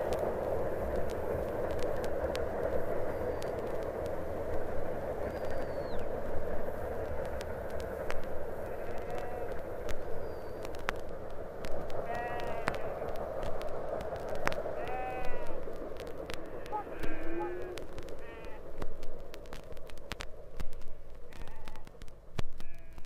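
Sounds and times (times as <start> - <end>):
steady rushing noise: 0.0 - 23.0
vinyl record clicks and crackle: 0.0 - 23.0
bleating animal calls: 8.7 - 9.6, 16.6 - 18.6.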